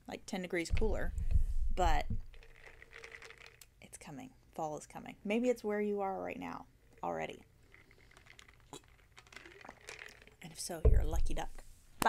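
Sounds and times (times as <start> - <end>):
sipping from plastic bottle: 7.6 - 10.4.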